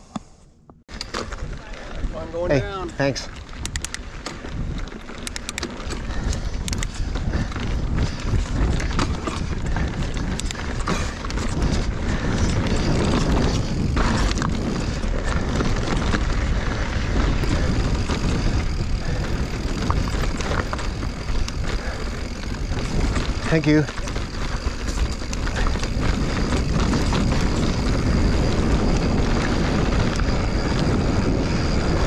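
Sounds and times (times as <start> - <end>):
bike tyres on rock and dirt: 0.0 - 32.0
bike clicking and rattling: 0.7 - 32.0
steady low rumble: 6.0 - 32.0.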